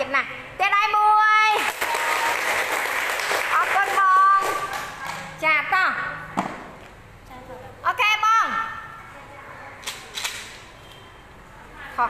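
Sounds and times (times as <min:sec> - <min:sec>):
audience clapping: 0:01.6 - 0:05.3.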